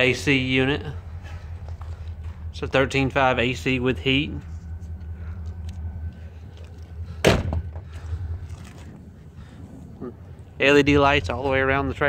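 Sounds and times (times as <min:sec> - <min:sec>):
low hum: 0:00.0 - 0:12.0
sharp thump: 0:07.2 - 0:07.8.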